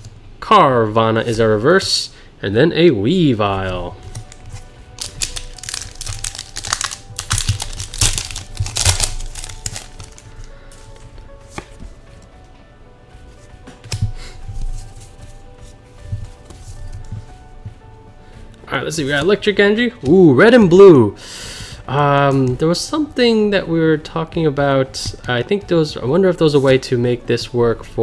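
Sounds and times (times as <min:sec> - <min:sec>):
soft background music: 0:00.0 - 0:28.0
handling trading cards: 0:03.4 - 0:20.7
foil wrapper crinkling and tearing: 0:04.1 - 0:11.0.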